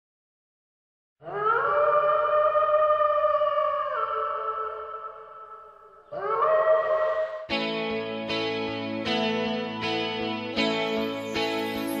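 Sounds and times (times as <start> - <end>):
wolf howling: 1.2 - 7.6.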